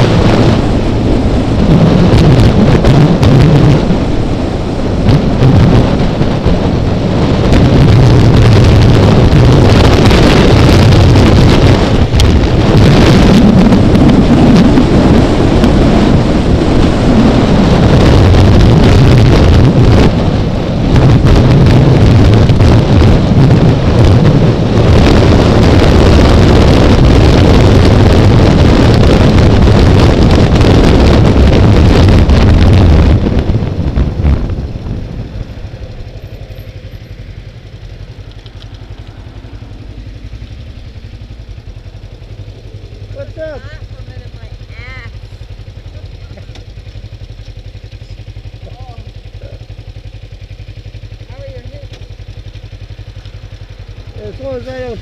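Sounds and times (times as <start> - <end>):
motorcycle engine: 0.0 - 55.0
road noise: 0.0 - 55.0
wind rush on microphone: 0.0 - 55.0.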